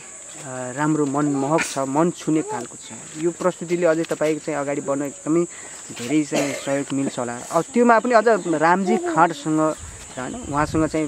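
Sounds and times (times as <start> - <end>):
crickets chirring: 0.0 - 11.0
person speaking: 0.4 - 11.0.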